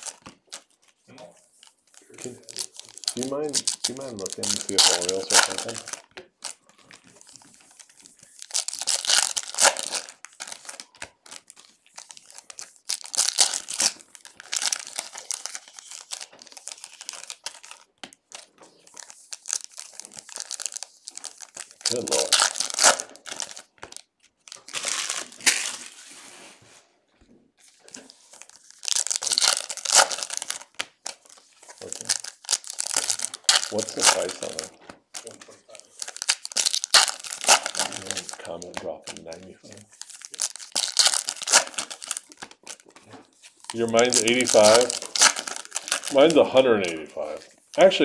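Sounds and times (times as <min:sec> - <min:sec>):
foil wrappers crinkling and tearing: 0:00.0 - 0:26.6, 0:27.6 - 0:48.0.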